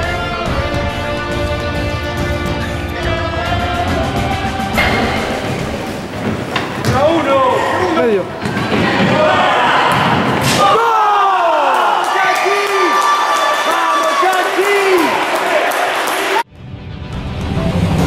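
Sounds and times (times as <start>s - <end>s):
voices shouting in hall: 6.9s - 16.4s.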